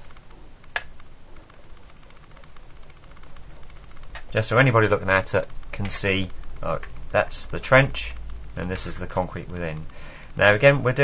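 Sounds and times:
sharp click: 0:00.0 - 0:04.4.

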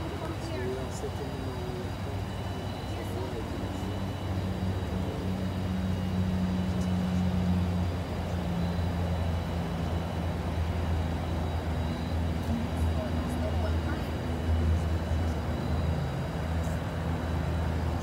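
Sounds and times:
faint indistinct voices: 0:00.0 - 0:18.0
vehicle engine idling: 0:00.0 - 0:18.0.

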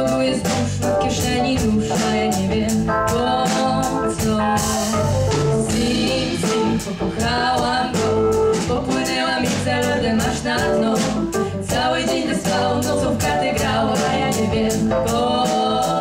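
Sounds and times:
woman singing: 0:00.0 - 0:04.9, 0:05.6 - 0:16.0
drum kit beat: 0:00.0 - 0:16.0
backing choir of women: 0:05.6 - 0:16.0.

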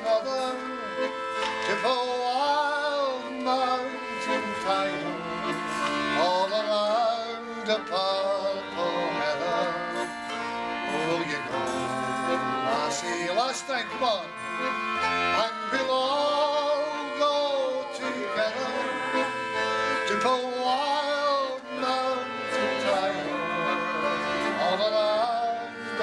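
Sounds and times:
man singing folk song: 0:00.0 - 0:10.1, 0:10.8 - 0:14.3, 0:15.4 - 0:26.0
piano accordion: 0:00.0 - 0:26.0
strummed banjo: 0:00.0 - 0:26.0.

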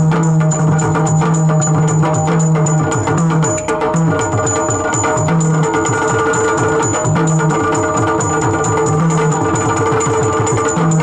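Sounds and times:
hand-played drum strokes: 0:00.0 - 0:11.0.

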